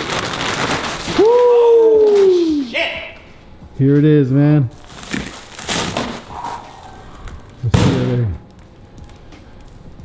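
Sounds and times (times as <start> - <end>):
packing material rustling: 0.0 - 1.6, 4.8 - 7.7.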